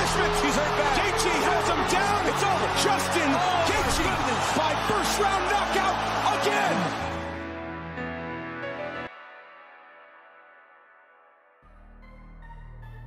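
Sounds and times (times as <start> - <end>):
crowd cheering and yelling: 0.0 - 9.0
background music: 0.0 - 13.0.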